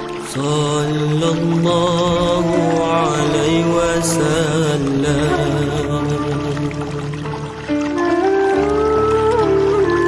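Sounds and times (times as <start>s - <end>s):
devotional chant in long held notes: 0.0s - 8.0s
musical accompaniment: 0.0s - 10.0s.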